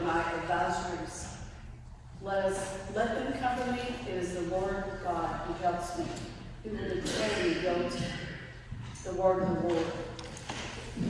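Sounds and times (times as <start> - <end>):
woman reading aloud: 0.0 - 10.3.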